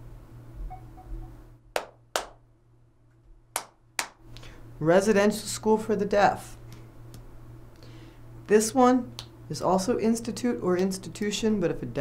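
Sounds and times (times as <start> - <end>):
sharp hand claps: 1.8 - 2.4, 3.6 - 4.2.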